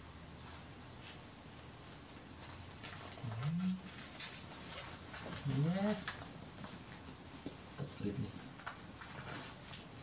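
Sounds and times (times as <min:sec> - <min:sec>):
diaper crinkling and rustling: 0:01.9 - 0:10.0.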